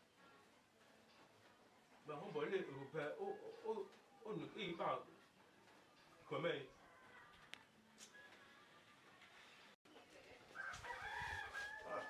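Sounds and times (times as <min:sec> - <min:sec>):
rooster crowing: 0:10.6 - 0:12.0.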